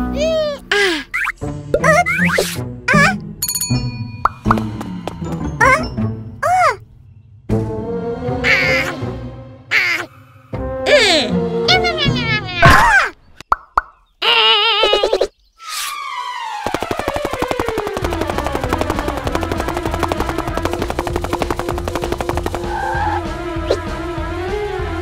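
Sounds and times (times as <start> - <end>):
rapid even ticking: 16.6 - 23.0
sharp clicks: 16.7 - 22.7.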